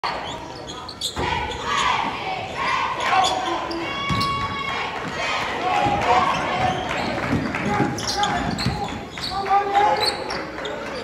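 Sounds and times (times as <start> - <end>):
crowd and player voices echoing: 0.0 - 11.0
sneaker squeaks: 0.1 - 2.2, 3.0 - 4.5, 6.2 - 11.0.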